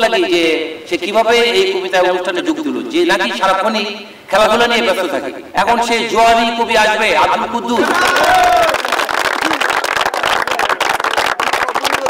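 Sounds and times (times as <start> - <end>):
audience applauding: 7.8 - 12.0.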